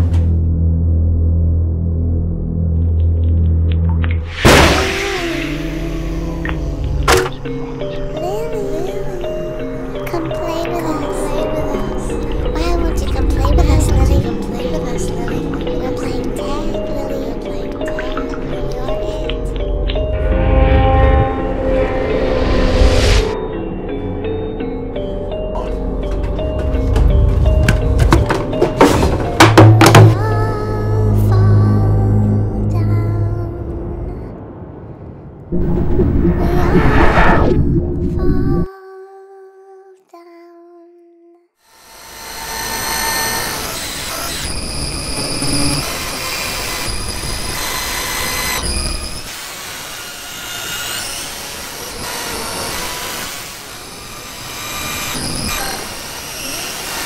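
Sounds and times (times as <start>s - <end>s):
low drone: 0.0s - 8.2s, 17.7s - 28.0s, 30.2s - 38.7s
eerie held notes: 4.4s - 29.4s
sharp wooden knocks: 26.1s - 30.2s
noisy rumble: 30.5s - 38.7s
high-pitched whining tones: 35.5s - 38.7s, 41.8s - 57.0s.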